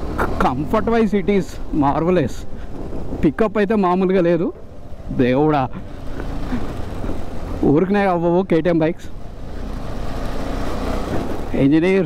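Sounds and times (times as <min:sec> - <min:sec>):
motorcycle engine rumble: 0:00.0 - 0:12.0.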